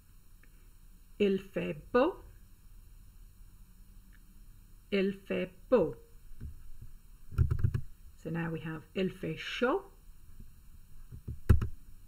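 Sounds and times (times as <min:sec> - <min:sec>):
faint ticks: 0:00.4 - 0:00.7.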